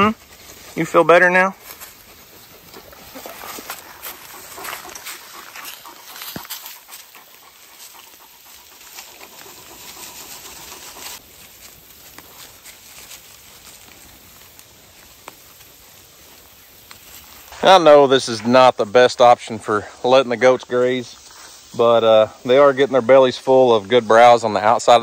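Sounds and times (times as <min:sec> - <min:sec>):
goats tearing at vegetation: 0:00.0 - 0:17.6
dog moving near microphone: 0:01.6 - 0:11.2.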